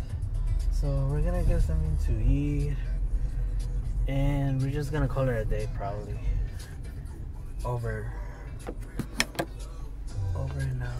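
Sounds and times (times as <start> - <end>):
car engine idling: 0.0 - 10.9
sharp clicks and knocks: 8.6 - 9.6.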